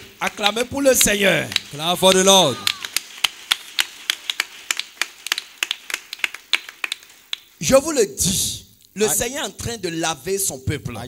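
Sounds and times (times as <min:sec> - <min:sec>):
scattered hand claps: 0:00.0 - 0:07.6.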